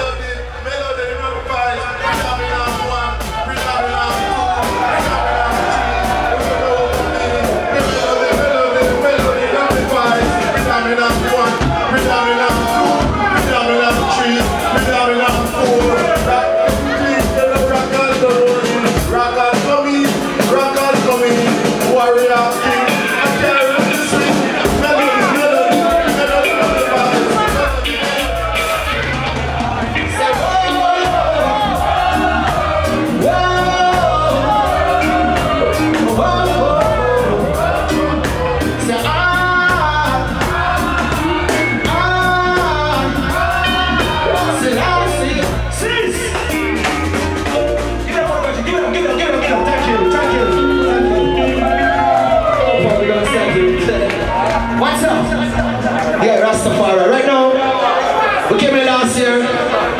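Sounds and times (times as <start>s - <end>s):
live reggae band: 0.0s - 59.9s
drum hits: 2.1s - 56.1s
person singing: 3.8s - 55.8s.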